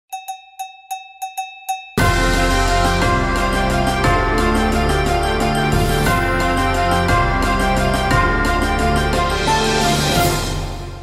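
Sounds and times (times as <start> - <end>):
music: 0.6 - 11.0.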